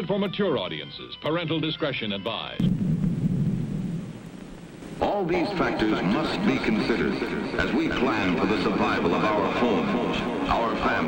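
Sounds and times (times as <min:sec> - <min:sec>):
deep rumble: 0:02.6 - 0:05.6.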